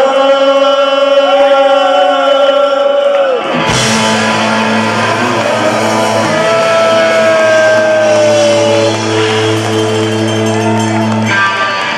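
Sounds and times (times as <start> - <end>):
punk rock band sustained chord: 3.7 - 11.9.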